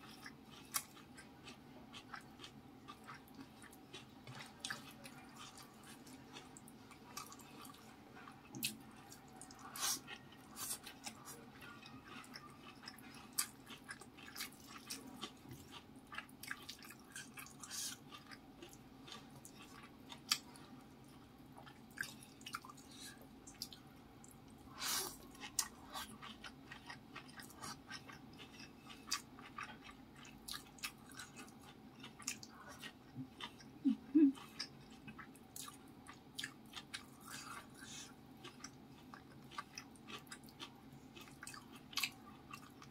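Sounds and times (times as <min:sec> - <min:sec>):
faint steady hum: 0:00.0 - 0:42.9
person chewing with wet mouth sounds: 0:00.0 - 0:42.9.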